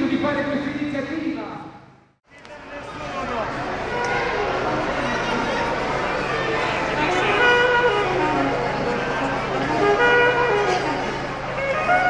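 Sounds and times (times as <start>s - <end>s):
crowd voices: 2.3s - 12.0s
saxophone playing: 3.8s - 12.0s
violin playing: 3.8s - 12.0s.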